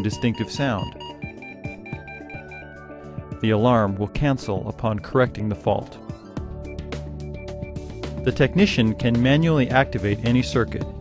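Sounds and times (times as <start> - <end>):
rapid high-pitched alarm beeping: 0.0 - 2.7
guitar background music: 0.0 - 11.0.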